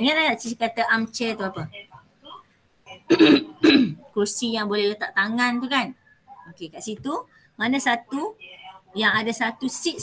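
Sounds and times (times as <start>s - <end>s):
woman coughing: 3.1s - 4.0s.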